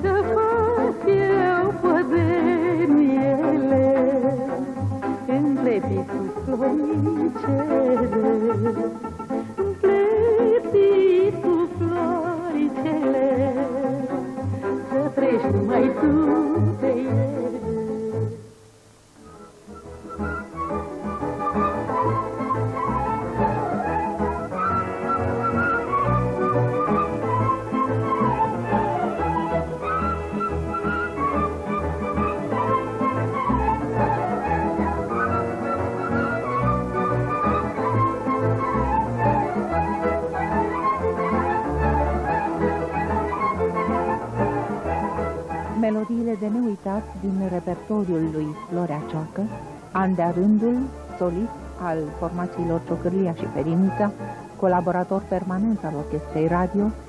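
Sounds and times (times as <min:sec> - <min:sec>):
folk band playing: 0:00.0 - 0:18.5, 0:19.2 - 0:57.0
violins: 0:00.0 - 0:18.6, 0:19.2 - 0:57.0
accordion: 0:00.0 - 0:57.0
double bass: 0:19.3 - 0:57.0.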